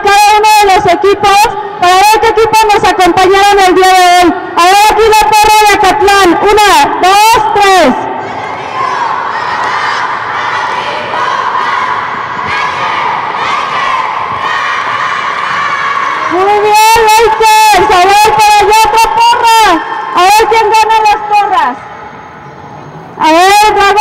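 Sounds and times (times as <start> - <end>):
woman calling over loudspeaker: 0.0 - 8.2, 16.2 - 22.0, 23.2 - 24.0
children shouting a cheer: 8.2 - 16.7
crowd cheering: 8.2 - 17.9.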